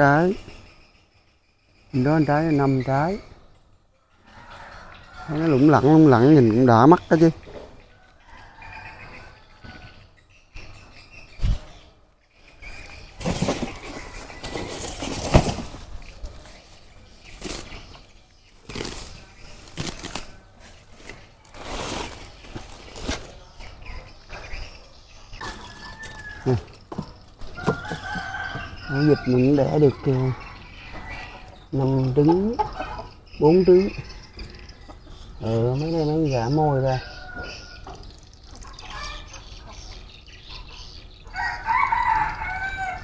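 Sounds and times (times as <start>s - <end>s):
faint birds chirping: 0.0s - 43.0s.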